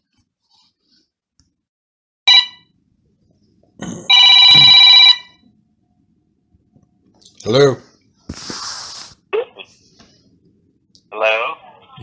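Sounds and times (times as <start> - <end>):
telephone ringing: 2.3 - 2.7, 4.1 - 5.4.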